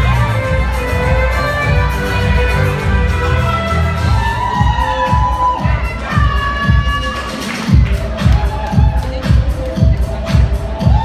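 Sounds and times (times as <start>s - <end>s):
steady kick-drum beat: 0.0s - 11.0s.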